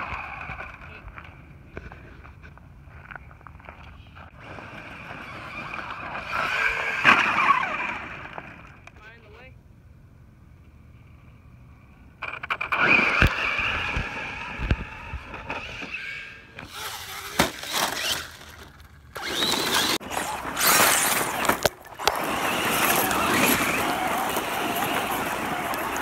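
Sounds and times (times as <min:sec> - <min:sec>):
high-pitched motor whine: 0:12.4 - 0:26.0
toy truck tumbling knocks: 0:16.6 - 0:26.0
tyres spraying dirt and gravel: 0:16.6 - 0:26.0.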